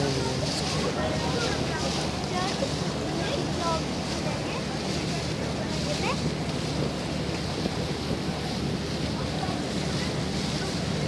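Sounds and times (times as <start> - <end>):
water rushing past hull: 0.0 - 11.0
wind: 0.0 - 11.0.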